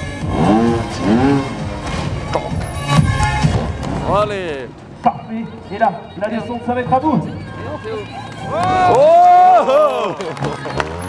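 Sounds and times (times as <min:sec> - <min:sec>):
motorcycle engine revving: 0:00.0 - 0:04.0, 0:09.8 - 0:11.0
loud background music: 0:00.0 - 0:09.0.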